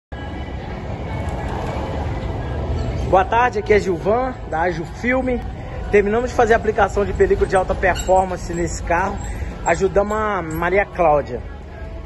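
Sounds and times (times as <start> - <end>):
low rumble of vehicles: 0.1 - 12.0.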